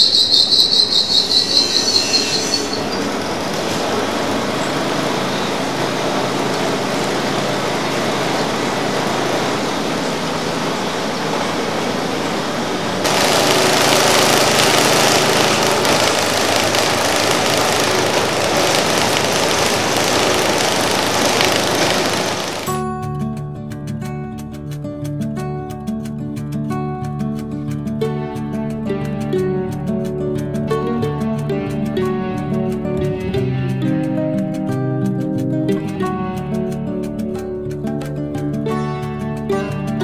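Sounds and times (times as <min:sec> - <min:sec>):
machine high squeal: 0:00.0 - 0:03.6
machine mechanical whir: 0:02.2 - 0:22.8.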